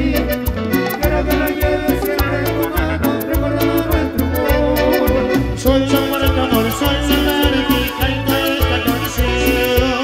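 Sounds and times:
cumbia band playing: 0.0s - 10.0s.

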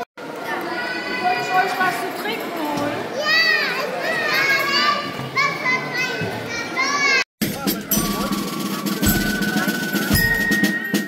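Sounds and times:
children calling out and chattering: 0.0s - 10.4s.

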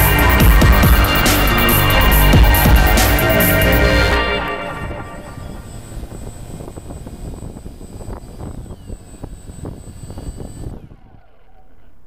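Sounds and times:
drone motors whining: 0.0s - 12.0s
wind buffeting on microphone: 5.2s - 11.4s.

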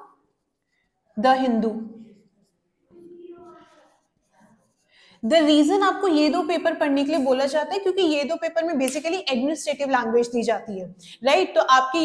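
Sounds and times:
marker writing on whiteboard: 0.0s - 8.0s.

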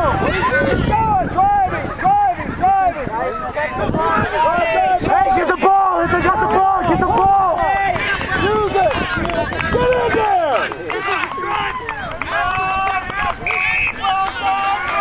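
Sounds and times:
players shouting: 0.0s - 15.0s
referee's whistle blast: 13.4s - 14.0s.

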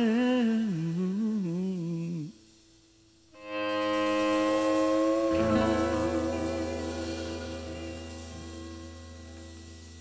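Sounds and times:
band sustained chord: 3.4s - 10.0s
man humming: 4.3s - 8.0s.

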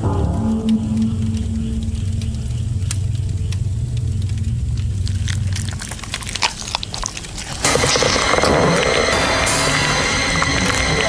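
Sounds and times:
crackles and clicks: 0.0s - 11.0s
low horror soundtrack drone: 0.0s - 11.0s.

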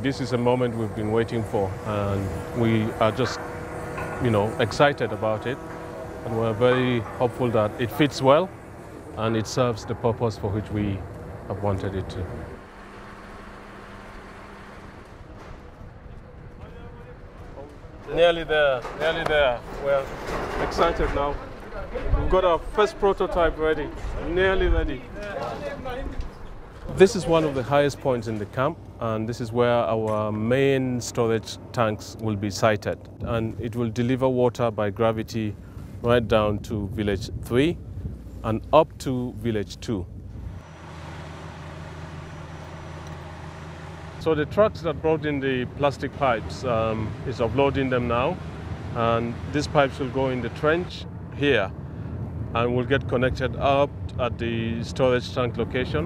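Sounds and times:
crane truck engine humming: 0.0s - 33.6s, 39.4s - 53.3s
diesel machinery running: 0.0s - 56.0s
open-air noise: 0.0s - 56.0s.

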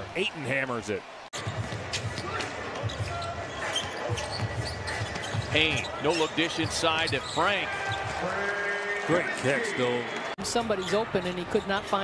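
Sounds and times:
empty arena ambience: 0.0s - 12.0s.

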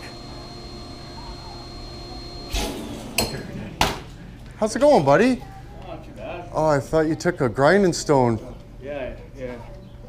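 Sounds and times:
vacuum cleaner humming: 0.0s - 3.8s.

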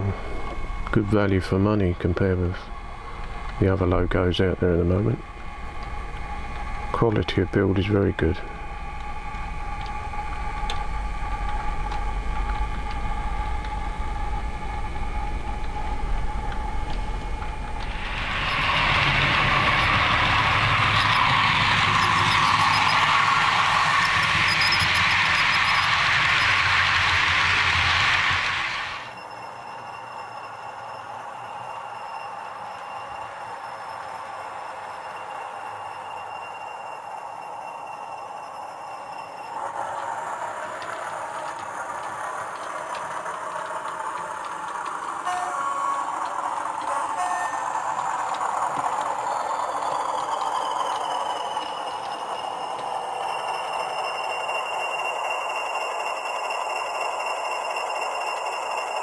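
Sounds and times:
model train motor hum: 0.0s - 59.0s
model train wheel noise: 0.0s - 59.0s.

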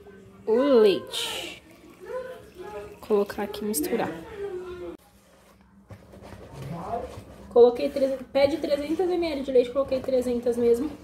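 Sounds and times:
spatula stirring batter in bowl: 4.3s - 11.0s.

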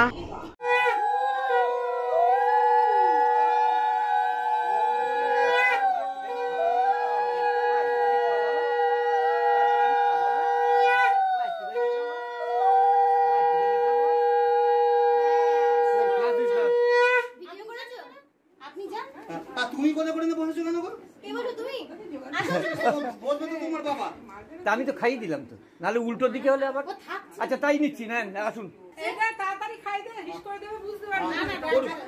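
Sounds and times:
women ululating: 0.0s - 16.4s.

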